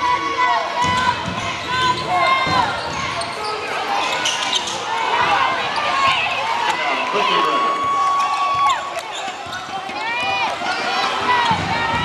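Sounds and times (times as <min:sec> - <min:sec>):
spectators talking: 0:00.0 - 0:12.0
sneakers squeaking: 0:00.8 - 0:06.7, 0:07.7 - 0:12.0.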